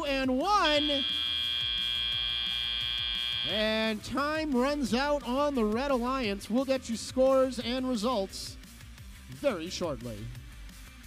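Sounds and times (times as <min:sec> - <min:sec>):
high electronic buzzer: 0:00.0 - 0:04.0.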